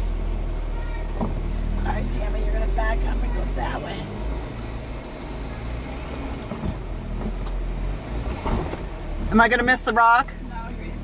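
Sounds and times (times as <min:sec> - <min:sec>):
engine running at low revs: 0:00.0 - 0:11.0.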